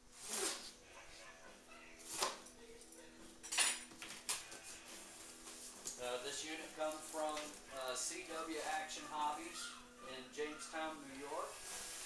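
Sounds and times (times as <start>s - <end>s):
cardboard boxes scraping: 11.5s - 12.0s.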